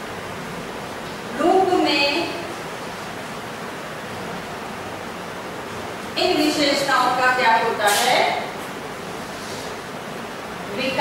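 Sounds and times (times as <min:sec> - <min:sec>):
woman speaking: 0:01.4 - 0:02.5, 0:06.2 - 0:08.5, 0:10.7 - 0:11.0.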